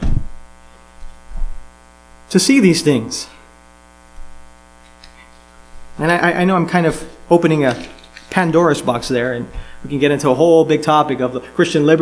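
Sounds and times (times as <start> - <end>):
low thump: 0.0 - 0.4
soft low bump: 0.0 - 0.4, 1.3 - 1.6
buzzy mains hum: 0.0 - 12.0.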